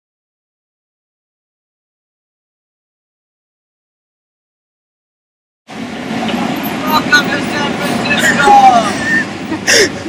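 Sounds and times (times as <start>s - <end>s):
street traffic: 5.7s - 10.0s
voices calling out: 5.8s - 10.0s.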